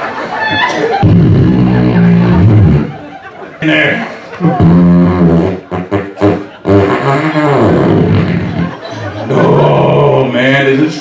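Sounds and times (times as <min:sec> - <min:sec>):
fake fart noises: 0:01.0 - 0:03.0, 0:04.4 - 0:08.8.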